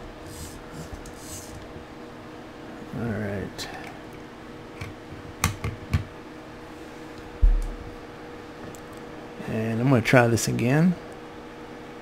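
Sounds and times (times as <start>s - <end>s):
faint steady hum: 0.0s - 12.0s
heavy low thump: 7.4s - 7.9s.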